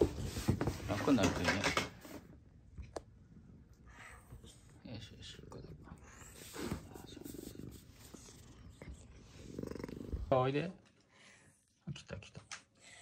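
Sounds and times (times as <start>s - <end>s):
cat purring: 2.7s - 11.0s.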